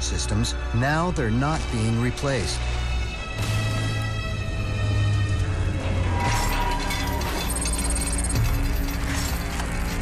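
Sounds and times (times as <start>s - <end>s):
low music drone: 0.0s - 10.0s.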